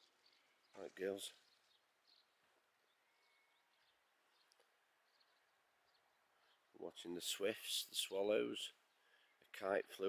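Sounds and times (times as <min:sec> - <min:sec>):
faint high bird chirps: 0:00.0 - 0:06.9
man's voice: 0:06.8 - 0:08.8.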